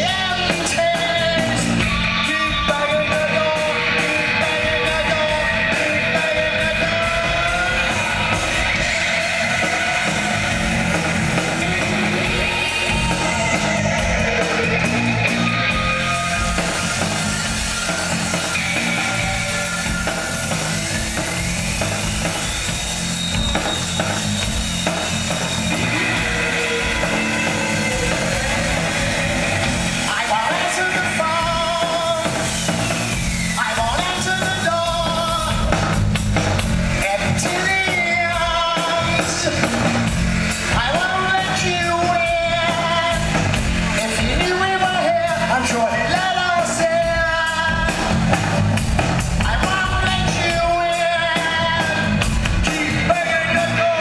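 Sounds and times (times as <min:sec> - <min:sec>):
man singing: 0:00.0 - 0:17.0, 0:25.4 - 0:32.6, 0:33.4 - 0:36.0, 0:36.9 - 0:40.0, 0:40.6 - 0:48.3, 0:49.3 - 0:54.0
post-punk band playing live: 0:00.0 - 0:54.0.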